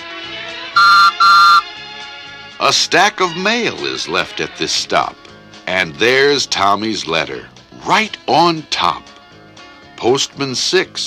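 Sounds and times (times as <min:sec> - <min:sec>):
soft background music: 0:00.0 - 0:11.0
whistle toots: 0:00.8 - 0:01.7.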